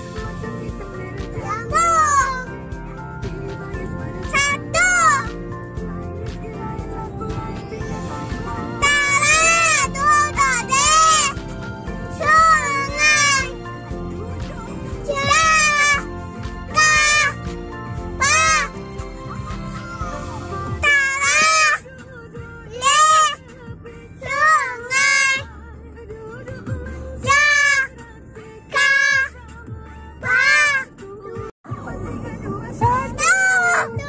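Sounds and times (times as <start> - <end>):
music: 0.0 - 34.0
child singing high notes: 1.5 - 2.5, 4.3 - 5.3, 8.8 - 11.4, 12.2 - 13.6, 15.0 - 16.0, 16.7 - 17.4, 18.2 - 18.8, 20.8 - 21.9, 24.2 - 25.4, 27.2 - 27.9, 28.7 - 29.3, 30.2 - 30.9, 32.8 - 34.0
child singing high note: 15.1 - 16.0, 16.7 - 17.4, 18.2 - 18.7.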